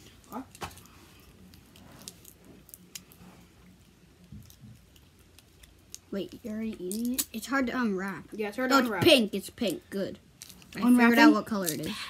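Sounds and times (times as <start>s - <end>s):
soft chewing: 0.0s - 7.3s.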